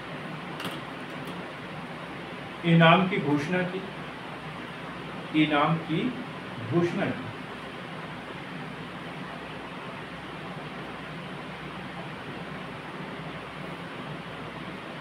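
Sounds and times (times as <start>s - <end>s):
room noise hiss: 0.0s - 15.0s.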